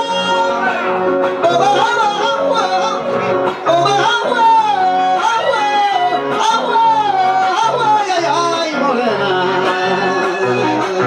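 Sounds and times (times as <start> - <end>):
man singing into a microphone: 0.0 - 11.0
strummed acoustic guitars: 0.0 - 11.0.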